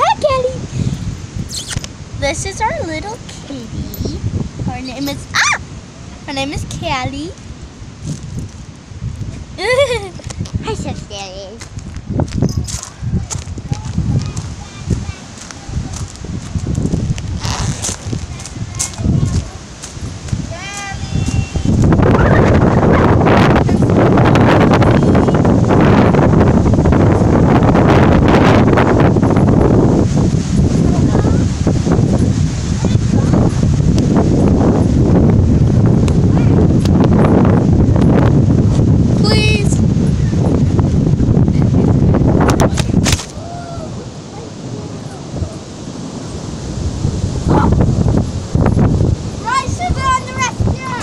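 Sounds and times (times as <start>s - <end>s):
wind on microphone: 0.0s - 51.0s.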